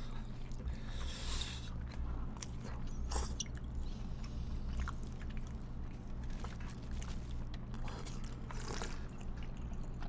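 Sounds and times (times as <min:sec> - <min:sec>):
steady low hum: 0:00.0 - 0:10.0
noodles slurped and chewed: 0:00.3 - 0:10.0.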